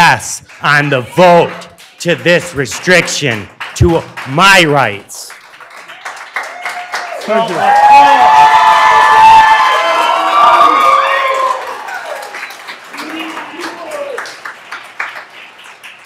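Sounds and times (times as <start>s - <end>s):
audience clapping: 0.0s - 16.0s
audience cheering and shouting: 6.5s - 14.3s.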